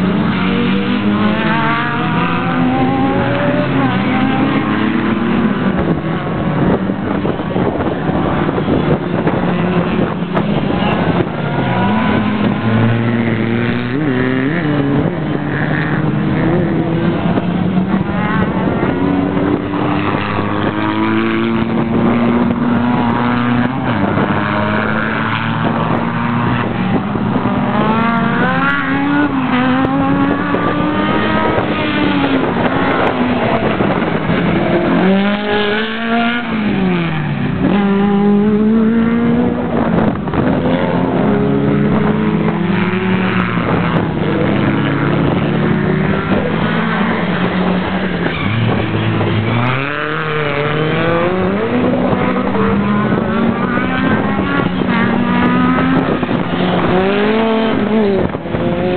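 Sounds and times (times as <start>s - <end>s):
racing car engine revving: 0.0s - 58.9s.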